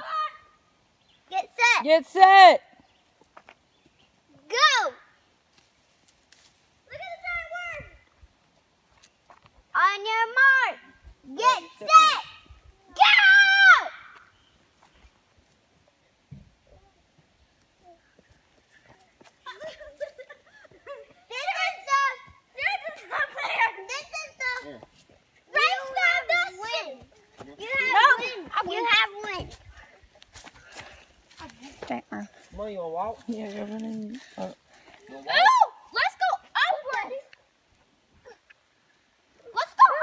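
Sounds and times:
children calling and shouting: 0.0s - 3.6s, 4.2s - 5.2s, 6.8s - 8.4s, 9.0s - 14.8s, 16.3s - 32.4s, 34.1s - 40.0s.

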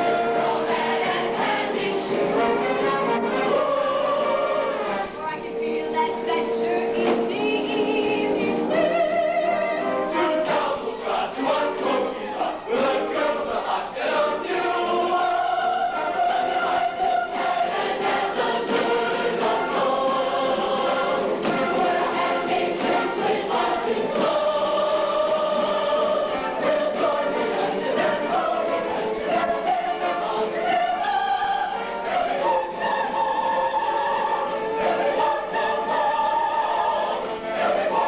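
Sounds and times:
large chorus singing: 0.0s - 38.0s.

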